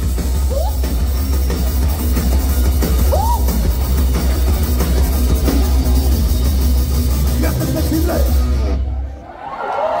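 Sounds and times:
live rock band playing: 0.0s - 9.2s
crowd cheering: 8.7s - 10.0s.

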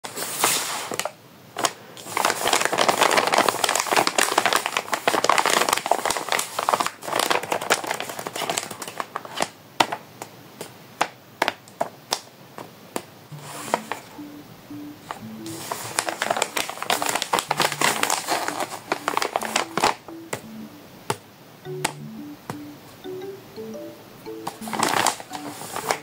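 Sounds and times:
paper crinkling: 0.4s - 9.6s, 15.5s - 20.0s, 24.6s - 26.0s.

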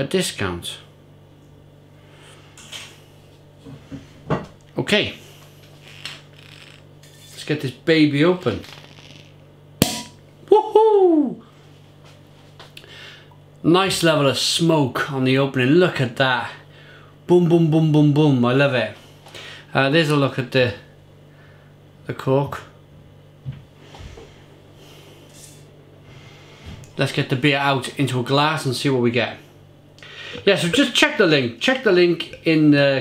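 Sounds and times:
low steady hum: 0.0s - 33.0s
cork popping from bottle: 8.6s - 10.2s
person exclaiming: 10.5s - 11.4s.

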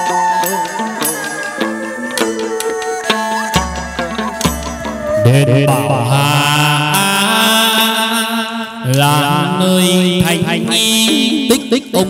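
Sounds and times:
person singing long notes: 0.0s - 12.0s.

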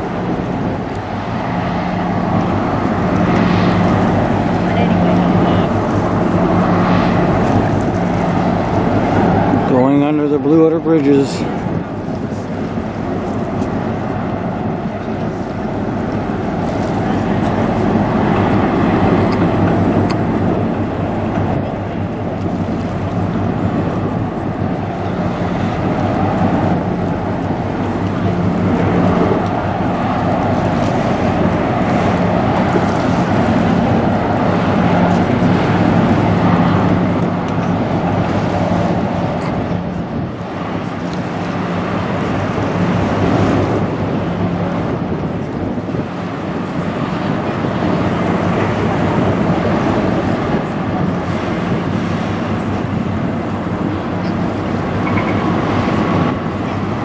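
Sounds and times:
diesel engine droning: 0.0s - 57.0s
wind noise on microphone: 0.0s - 57.0s.

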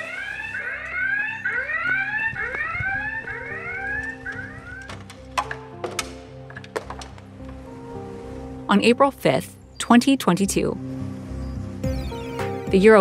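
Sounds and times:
alarm whooping: 0.0s - 4.9s.

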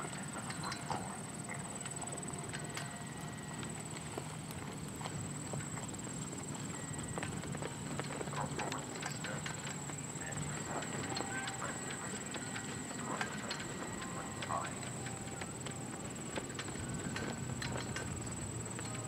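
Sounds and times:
faint voices: 0.0s - 4.2s, 5.2s - 19.0s
horse hooves trotting: 0.0s - 19.0s
steady high whine: 0.0s - 19.0s.

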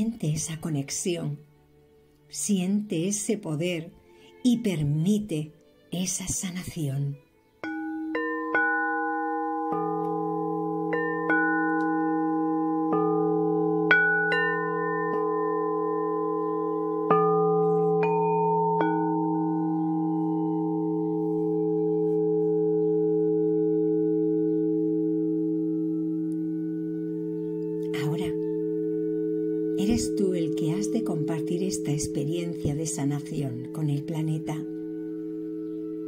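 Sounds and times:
bells ringing: 7.6s - 36.0s
layered meditation drone: 7.9s - 36.0s.

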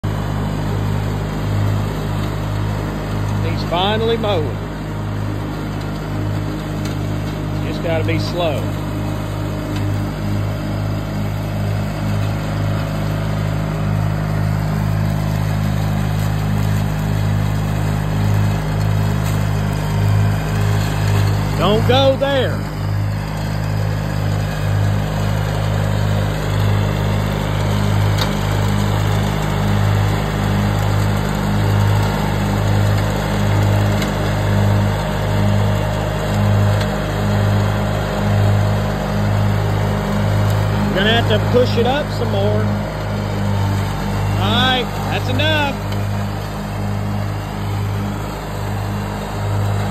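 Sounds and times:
garden tractor engine running: 0.0s - 49.9s
mower cutting tall grass: 0.0s - 49.9s.

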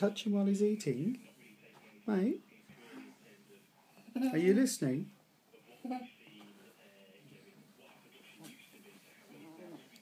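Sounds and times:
faint voice murmuring: 5.5s - 10.0s.

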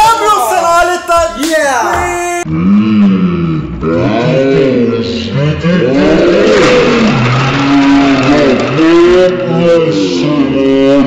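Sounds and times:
men shouting and whooping: 0.0s - 2.5s.

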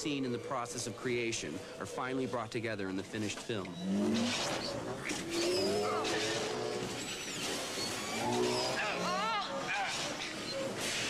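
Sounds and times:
speeder bike engine whines: 0.0s - 11.0s
wavering pitched cry: 5.2s - 7.2s.

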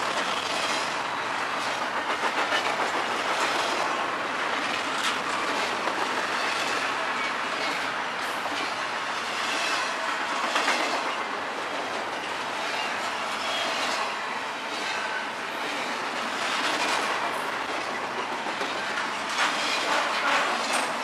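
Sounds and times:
train wheels rolling on rails: 0.0s - 21.0s.

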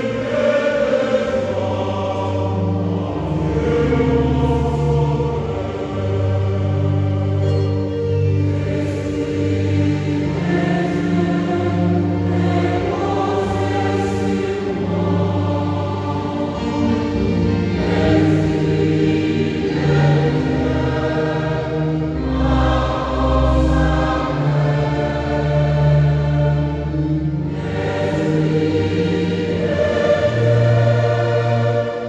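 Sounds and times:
choir singing held notes: 0.0s - 32.0s.

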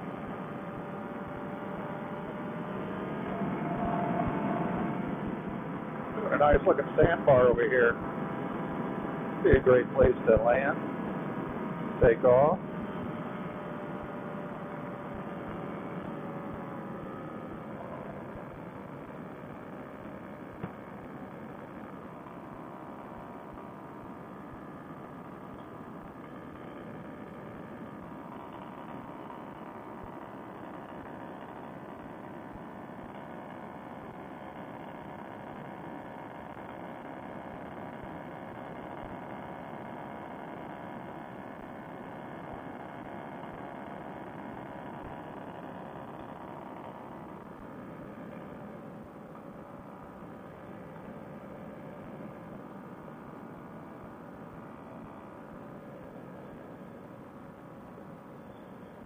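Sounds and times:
paramotor engine and propeller: 0.0s - 59.0s.

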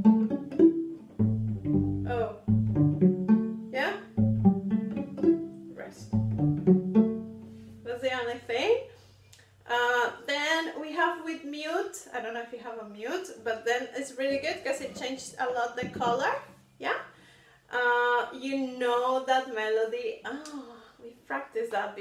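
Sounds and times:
double bass plucked notes: 0.0s - 8.5s, 14.2s - 16.5s.

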